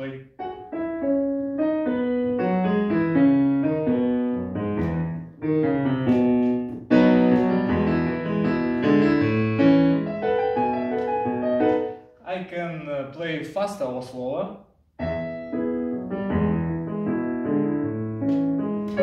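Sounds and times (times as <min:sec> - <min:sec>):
digital piano melody over chords: 0:00.0 - 0:12.2, 0:15.0 - 0:19.0.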